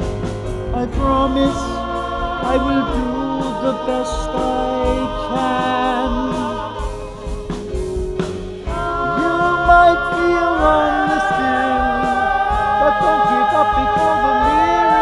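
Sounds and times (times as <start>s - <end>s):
live band playing: 0.0s - 15.0s
voices singing with vibrato: 0.0s - 15.0s.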